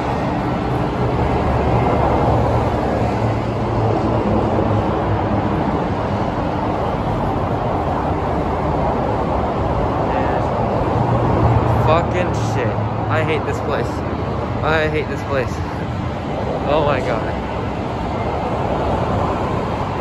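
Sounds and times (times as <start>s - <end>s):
loud freeway traffic: 0.0s - 20.0s.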